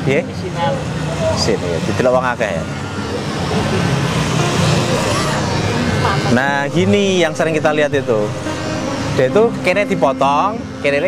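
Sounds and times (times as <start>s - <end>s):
electric hair clipper running: 2.6s - 7.1s.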